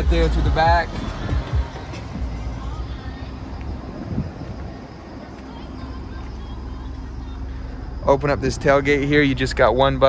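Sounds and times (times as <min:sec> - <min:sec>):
faint music: 0:00.0 - 0:10.0
handheld camera rumbling and bumps: 0:00.0 - 0:10.0.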